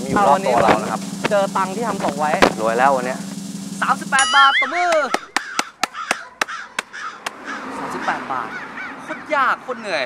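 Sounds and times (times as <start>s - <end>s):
man laughing: 4.6s - 5.6s
gloved hands clapping: 4.9s - 7.4s.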